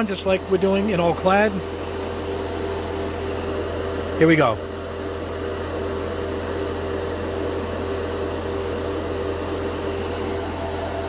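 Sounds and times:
extractor fan humming: 0:00.0 - 0:11.0
airbrush spray hissing: 0:04.9 - 0:09.7.

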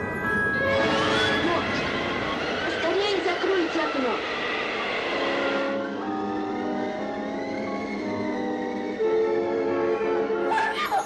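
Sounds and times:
orchestral music with held notes: 0:00.0 - 0:03.0, 0:05.1 - 0:11.0
wind-like whoosh with howling: 0:01.5 - 0:07.5.

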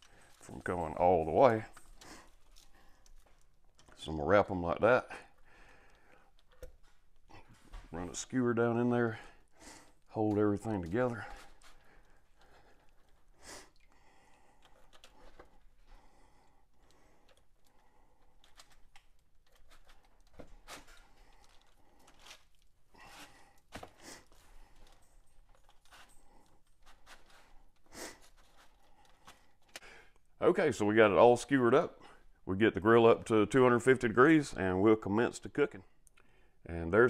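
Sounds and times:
faint clicks and rustles: 0:00.0 - 0:04.1, 0:09.4 - 0:30.3.

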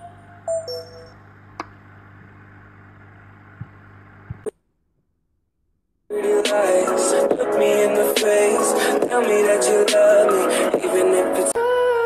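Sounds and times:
low background hum: 0:00.0 - 0:06.8.

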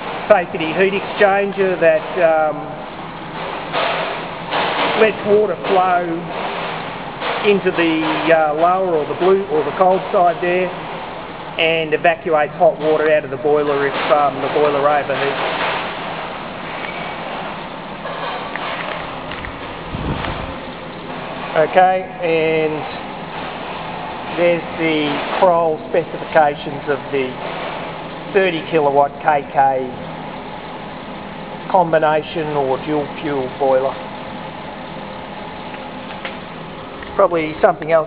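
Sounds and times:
boiler rushing noise: 0:00.0 - 0:38.0.

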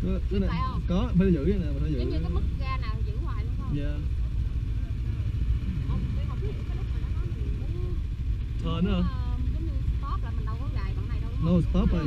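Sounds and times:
snowmobile engine idling: 0:00.0 - 0:12.0.

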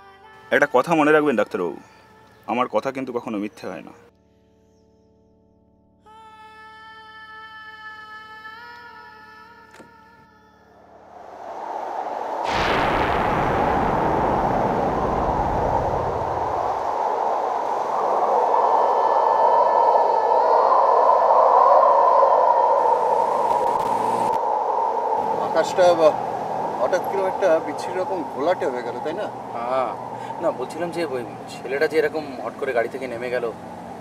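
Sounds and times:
loud rushing drone: 0:10.9 - 0:34.0
deep boom: 0:12.4 - 0:18.0.

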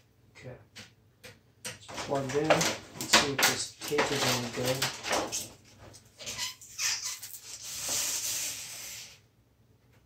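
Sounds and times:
adhesive tape rubbing: 0:06.2 - 0:09.2.

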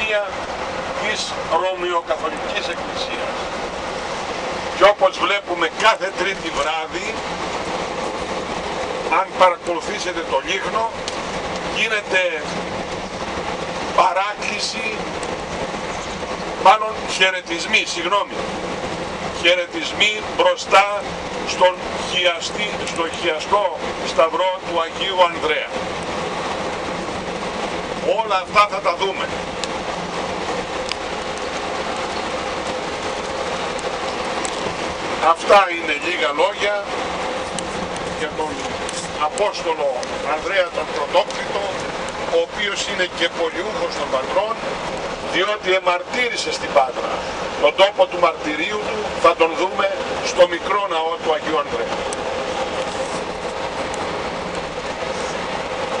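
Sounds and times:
road and engine noise inside coach: 0:00.0 - 0:56.0.

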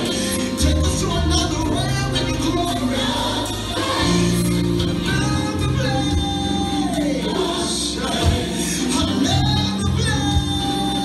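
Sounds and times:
gospel choir over loudspeakers: 0:00.0 - 0:11.0.

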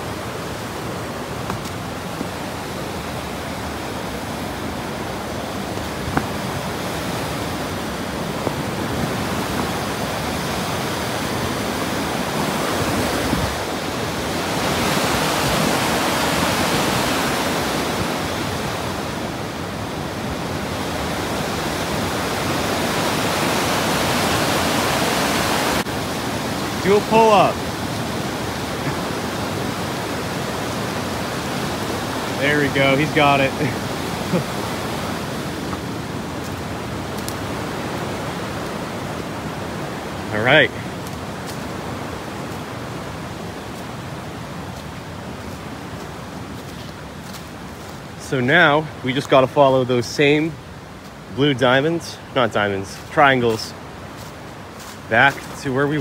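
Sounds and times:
river rapids rushing: 0:00.0 - 0:56.0.

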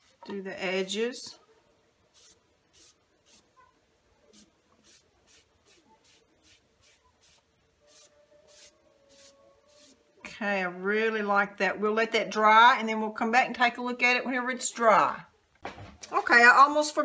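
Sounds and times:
sponge swishing on wooden board: 0:04.4 - 0:10.0.

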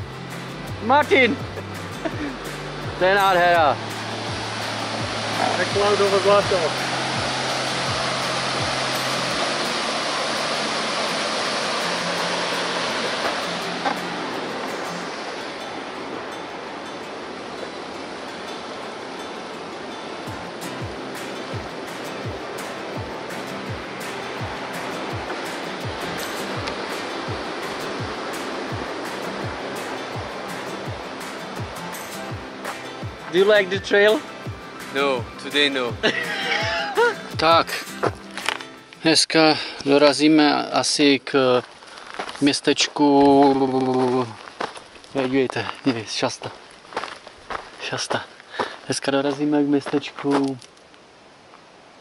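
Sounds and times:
background music with steady beat: 0:00.0 - 0:17.4, 0:19.1 - 0:39.0
rushing whitewater: 0:00.0 - 0:52.0.

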